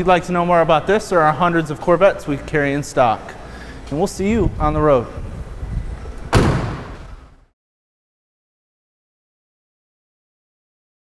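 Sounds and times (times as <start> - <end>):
heavy slam: 6.3 - 7.4.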